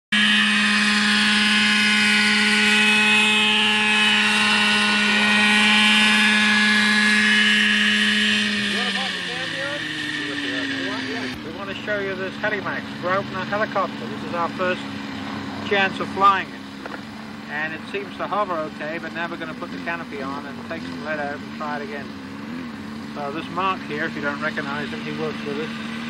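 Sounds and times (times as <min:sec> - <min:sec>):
model helicopter engine buzzing: 0:00.1 - 0:26.0.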